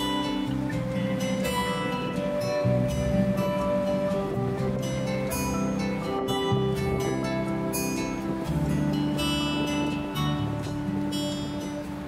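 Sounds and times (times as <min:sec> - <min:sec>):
acoustic guitar strummed chords: 0:00.0 - 0:12.0.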